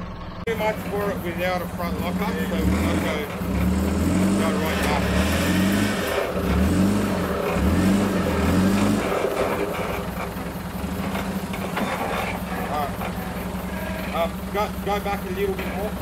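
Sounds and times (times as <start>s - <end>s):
diesel engine revving and idling: 0.0s - 16.0s.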